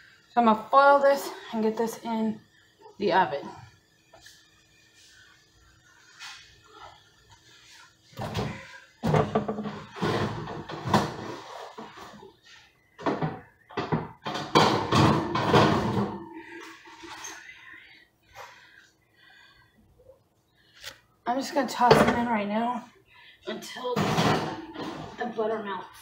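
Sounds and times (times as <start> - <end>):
faint steady hum: 0.0 - 26.0.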